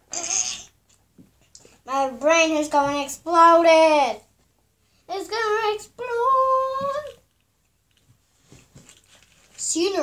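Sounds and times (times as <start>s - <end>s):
child singing: 1.9s - 4.2s, 5.1s - 7.2s.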